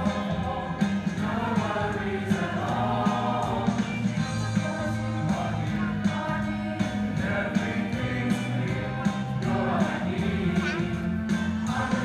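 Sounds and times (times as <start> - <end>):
girls choir singing: 0.0 - 4.1, 7.0 - 12.0.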